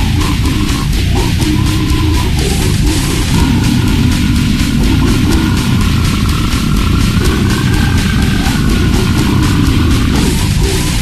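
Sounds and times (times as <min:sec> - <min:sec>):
distorted low guitars and bass: 0:00.0 - 0:11.0
extreme metal music: 0:00.0 - 0:11.0
fast drum hits: 0:00.0 - 0:11.0.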